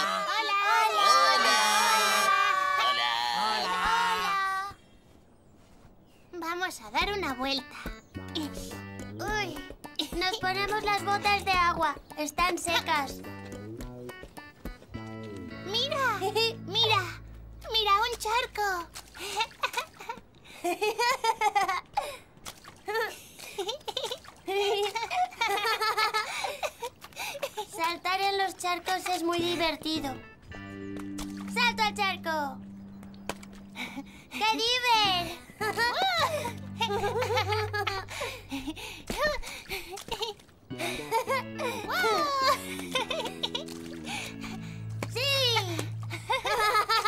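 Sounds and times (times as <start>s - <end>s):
child exclaiming and laughing: 0.0s - 4.8s, 6.5s - 13.3s, 15.6s - 20.2s, 22.9s - 25.4s, 26.2s - 30.2s, 34.3s - 43.7s, 45.1s - 47.0s
background music: 7.0s - 19.2s, 29.2s - 39.0s, 40.7s - 47.0s
boots splashing in puddle: 17.3s - 20.3s, 22.3s - 25.4s, 30.9s - 31.8s, 35.1s - 46.7s
girls laughing and giggling: 19.2s - 22.2s, 23.4s - 27.8s, 34.0s - 44.6s, 45.8s - 47.0s.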